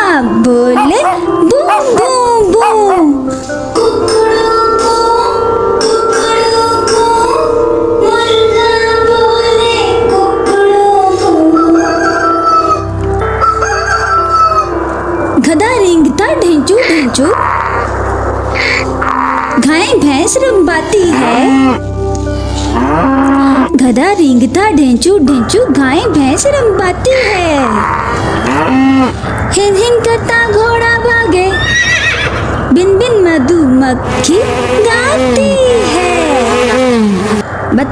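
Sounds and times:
background music: 0.0s - 37.9s
rooster crowing: 11.4s - 14.8s
buffalo lowing: 16.4s - 23.8s, 27.1s - 29.5s.

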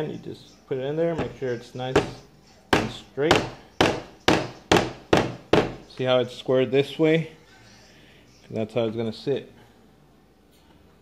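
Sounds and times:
rubber mallet tapping dowel: 2.0s - 5.8s.

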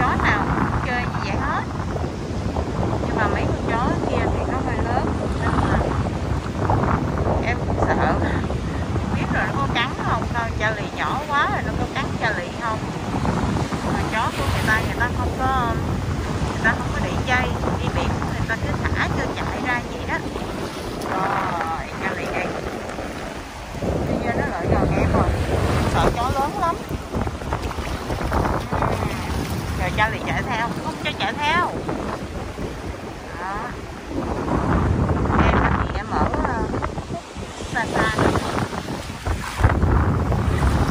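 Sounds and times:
gentle surf: 0.0s - 40.9s
wind buffeting microphone: 0.0s - 40.9s.

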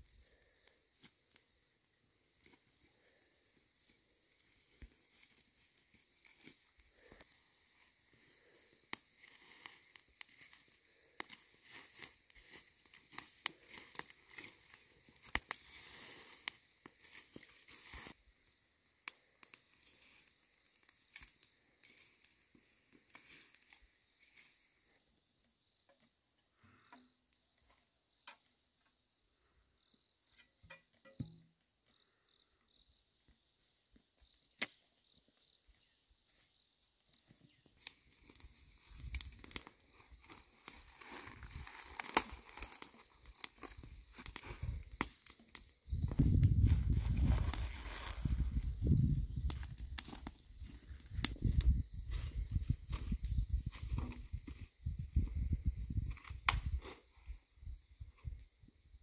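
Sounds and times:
dry grass crackling as it burns: 0.0s - 25.0s, 33.3s - 58.7s
stick rustling grass: 3.8s - 18.2s, 19.2s - 24.6s, 37.8s - 54.6s.

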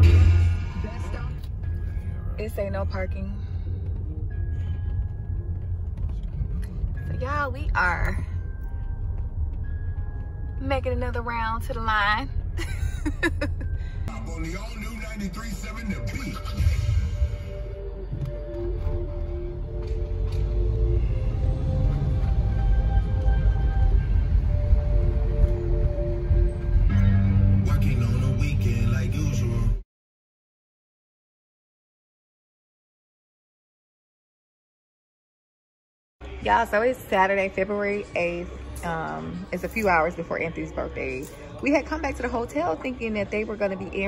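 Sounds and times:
car engine rumble: 0.0s - 29.7s
road noise: 0.0s - 29.7s.

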